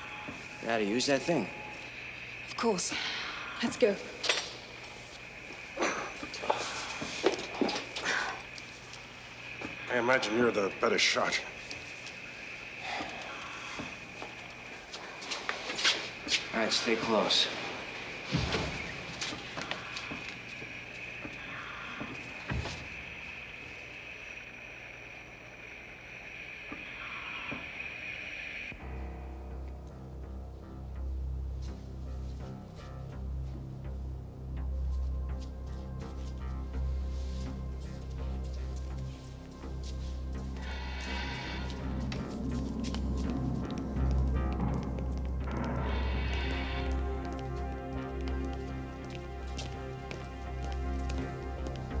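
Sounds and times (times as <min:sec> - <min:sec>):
anesthesia machine hissing: 0:00.0 - 0:28.9, 0:38.9 - 0:43.5, 0:45.4 - 0:48.8
faint steady hum: 0:00.0 - 0:52.0
low dark suspense music: 0:00.0 - 0:52.0
people moving about: 0:04.1 - 0:23.4, 0:34.9 - 0:52.0.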